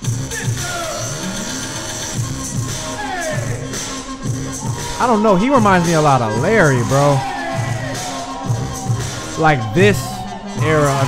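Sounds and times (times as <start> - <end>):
dance music with bass: 0.0 - 11.0
man speaking: 5.0 - 7.3, 9.4 - 11.0.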